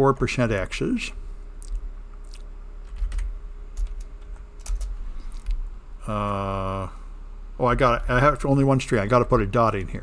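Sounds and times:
keyboard keystrokes: 2.9 - 5.6.

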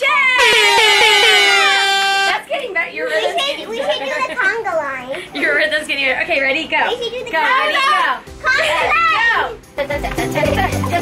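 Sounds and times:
horn-like sound effect: 0.4 - 2.4.

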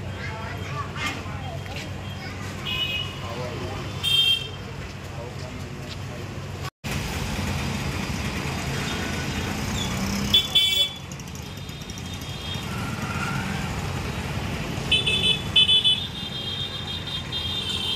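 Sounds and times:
busy street traffic: 0.0 - 17.9
vehicle horn honk: 4.0 - 4.6, 10.3 - 11.0.

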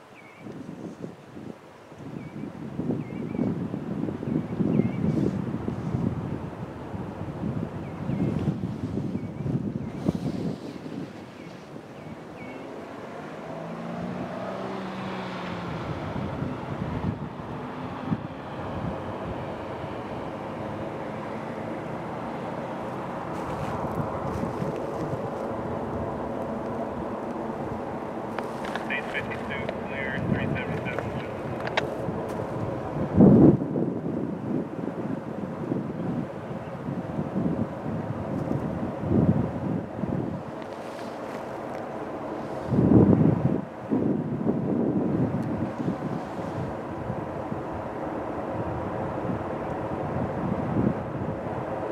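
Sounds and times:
wind on microphone: 0.0 - 51.9
diesel locomotive engines droning: 5.5 - 51.9.

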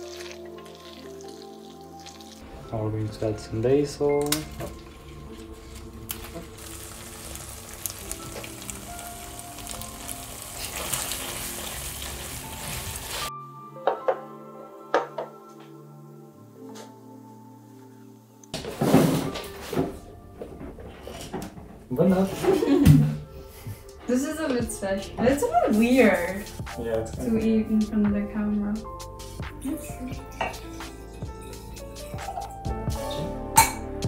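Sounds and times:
pan sizzling: 0.0 - 13.3, 23.4 - 27.7
background music: 0.0 - 34.0.

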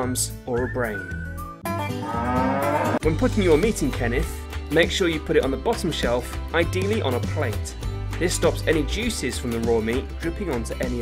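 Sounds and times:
light background music: 0.0 - 11.0
cow mooing: 1.9 - 3.0.

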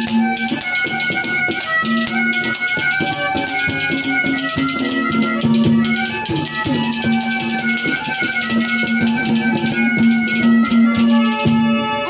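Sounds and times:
hand drums beaten: 0.0 - 11.9
melody instrument holding note: 0.7 - 12.0.

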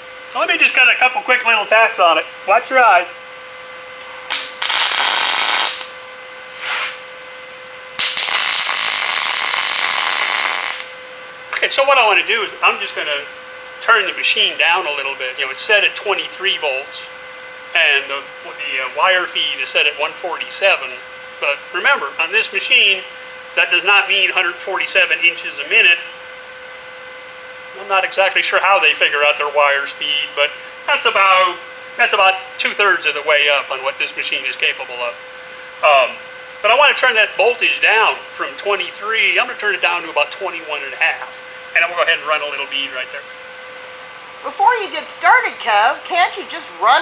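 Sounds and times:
electrical hum: 0.0 - 47.0
welding arc crackling: 3.8 - 7.0, 8.0 - 11.1
welding machine hum: 3.8 - 15.0
person speaking: 23.6 - 26.1.

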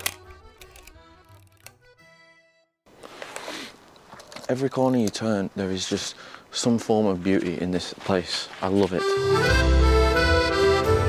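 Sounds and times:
film camera shutter clicks: 0.0 - 1.8.

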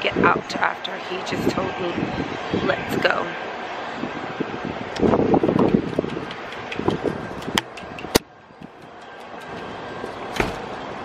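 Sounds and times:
wind rumble on microphone: 0.0 - 11.0
sharp clicks and knocks: 5.5 - 10.7.

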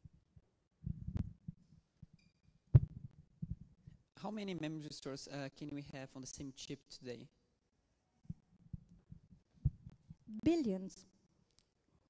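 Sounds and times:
microphone handling thumps: 0.8 - 1.6, 2.7 - 3.7, 8.3 - 10.2.

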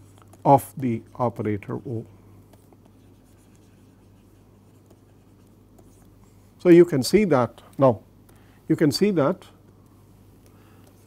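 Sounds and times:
stylus scratching and tapping: 0.0 - 6.4
low electrical hum: 0.0 - 11.0.

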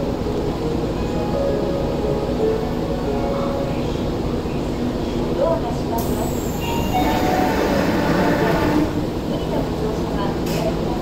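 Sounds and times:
train doors closing: 5.9 - 11.0.

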